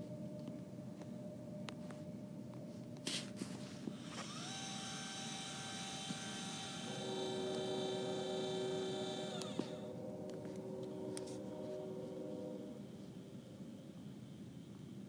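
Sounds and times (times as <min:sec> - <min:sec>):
high motor whine: 0:00.0 - 0:15.0
low motor whine: 0:00.0 - 0:15.0.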